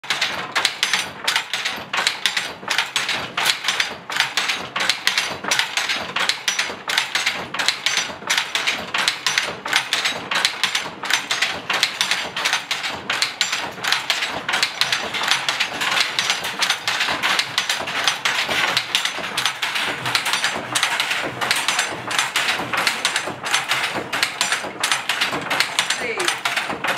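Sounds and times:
wooden handloom knocks and clacks: 0:00.0 - 0:26.9.

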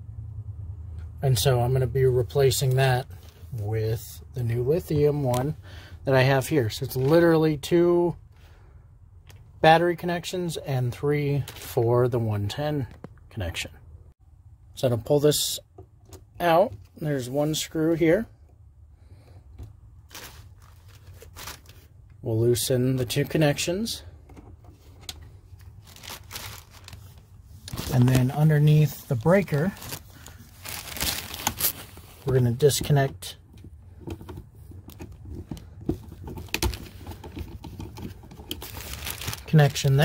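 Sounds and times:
handling rubs: 0:24.2 - 0:40.0.

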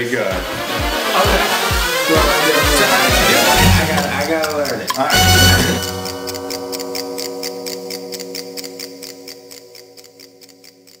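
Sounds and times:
steady ticking beat: 0:00.0 - 0:11.0
sustained music chord: 0:00.4 - 0:08.5.

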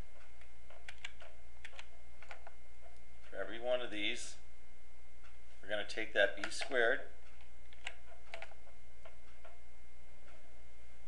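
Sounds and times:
low electrical hum: 0:00.0 - 0:11.0
computer mouse clicks: 0:00.4 - 0:02.6, 0:06.4 - 0:09.6.

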